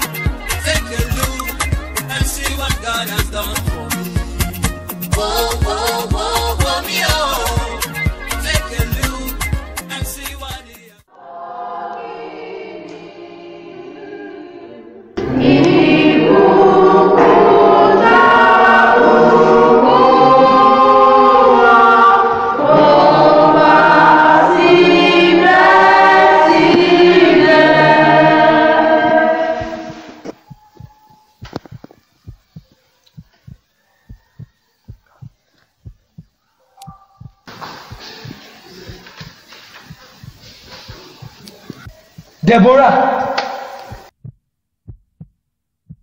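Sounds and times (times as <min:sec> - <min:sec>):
church choir singing: 0:05.1 - 0:07.8, 0:11.1 - 0:31.4, 0:42.9 - 0:44.1
short evenly spaced ticks: 0:29.9 - 0:44.1.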